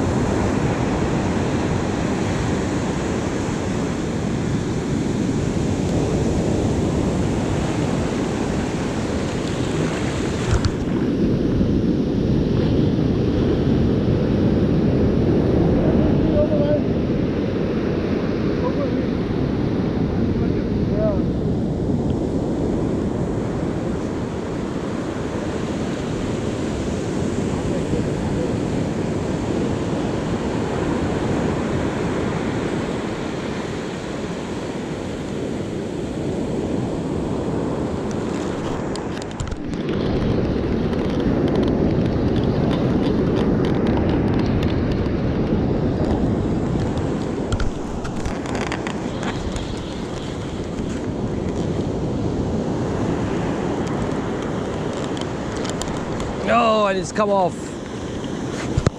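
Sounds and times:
surf breaking on beach: 0.0s - 58.9s
wind buffeting microphone: 0.0s - 58.9s.

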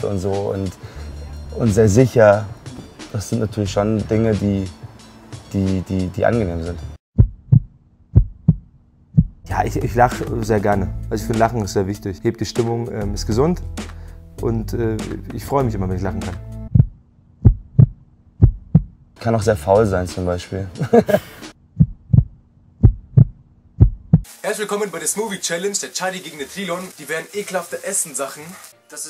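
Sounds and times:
heartbeat thumps: 7.2s - 9.4s, 16.6s - 19.1s, 21.6s - 24.3s.

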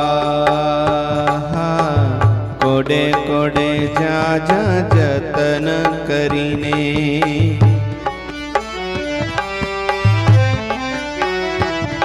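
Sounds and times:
man singing long held notes: 0.0s - 8.1s.

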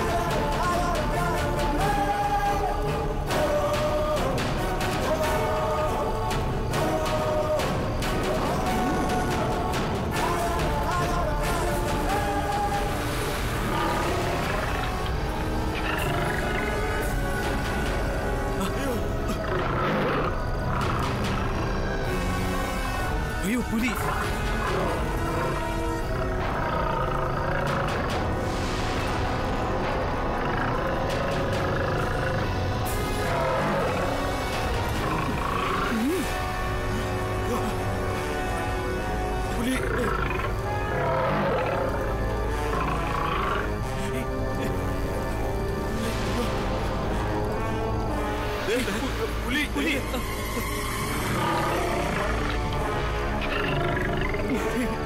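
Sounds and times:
background music: 0.0s - 55.0s
tiger roaring: 19.1s - 21.7s, 30.1s - 43.9s, 51.1s - 55.0s.

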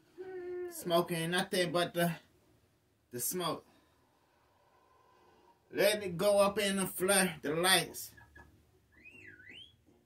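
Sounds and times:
swooping whistle: 9.0s - 9.8s.

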